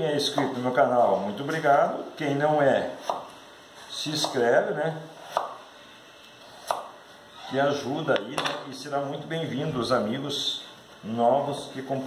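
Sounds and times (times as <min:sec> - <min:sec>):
knife chopping on wooden board: 0:03.0 - 0:03.3, 0:05.2 - 0:05.6, 0:06.6 - 0:06.9.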